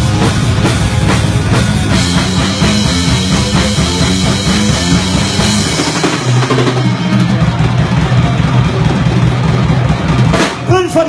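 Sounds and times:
bass guitar holding a low note: 0.0 - 10.8
drum kit: 0.0 - 11.0.

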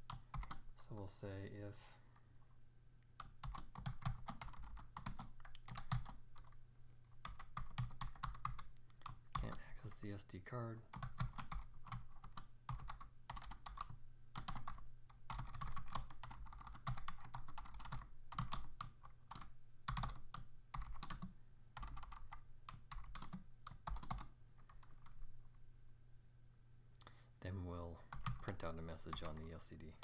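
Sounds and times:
typing on computer keyboard: 0.0 - 0.6, 3.2 - 6.6, 7.2 - 9.6, 10.9 - 25.2, 28.1 - 29.5
faint low hum: 0.0 - 30.0.

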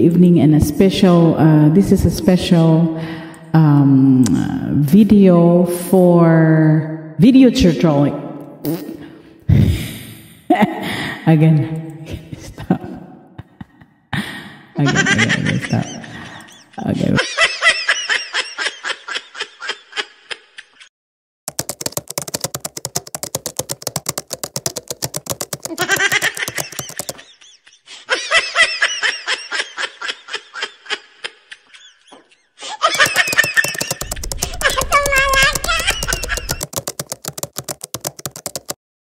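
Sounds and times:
woman giggling: 10.5 - 11.0, 12.1 - 14.0, 14.8 - 20.8, 25.7 - 36.6
high-pitched giggling and chattering: 25.6 - 27.8, 31.4 - 36.7.

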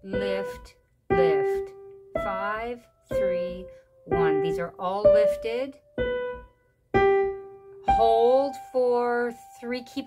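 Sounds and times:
digital piano melody notes: 0.0 - 10.0.

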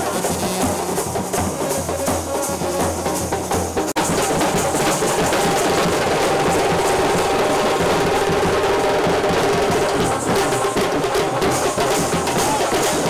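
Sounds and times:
fast dense drumming: 0.0 - 13.0.

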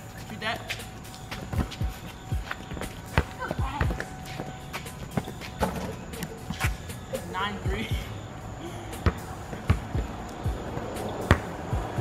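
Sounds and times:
footsteps: 0.0 - 6.9
background music beat: 0.0 - 12.0
basketball bouncing on concrete: 0.7 - 6.9, 9.0 - 12.0.

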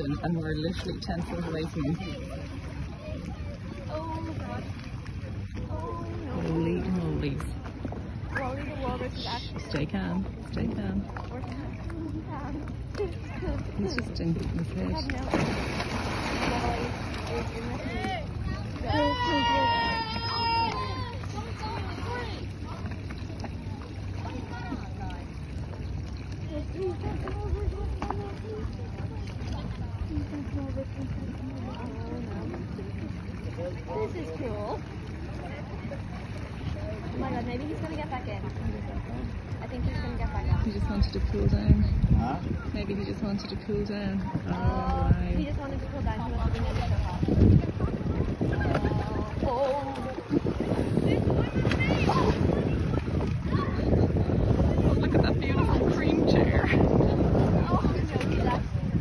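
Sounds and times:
faint voices murmuring: 0.0 - 59.0
water sloshing around boats: 0.0 - 59.0
wind rumbling on microphone: 0.0 - 59.0
wind buffeting microphone: 35.0 - 59.0.

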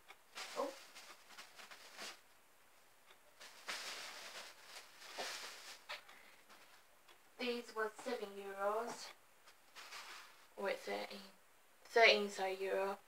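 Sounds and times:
rustling and shuffling belongings: 0.3 - 2.4, 3.3 - 6.9, 8.0 - 10.6.

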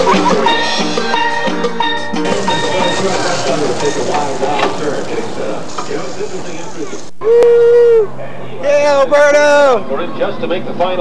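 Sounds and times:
steelpan notes: 0.0 - 4.5.

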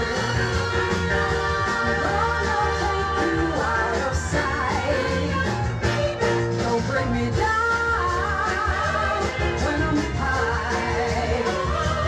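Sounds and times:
female singer with soul band: 0.0 - 12.0
steady bass: 0.0 - 12.0.

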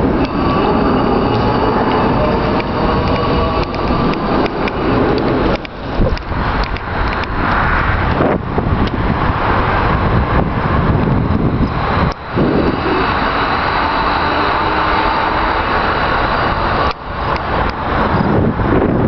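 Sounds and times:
highway traffic: 0.0 - 19.0
wind rushing on microphone: 0.0 - 19.0.

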